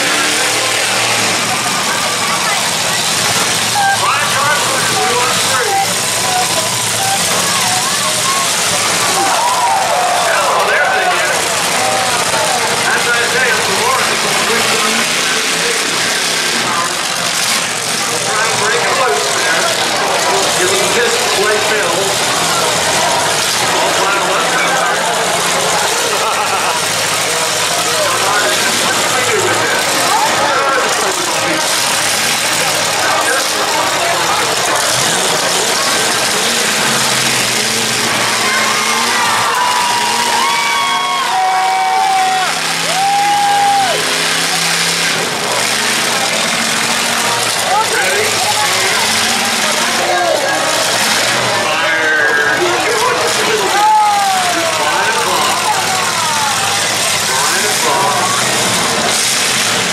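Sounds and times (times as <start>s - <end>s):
car engines revving: 0.0s - 59.9s
crowd chatter: 0.0s - 59.9s
people shouting: 5.1s - 13.9s, 36.5s - 45.0s, 47.3s - 58.9s.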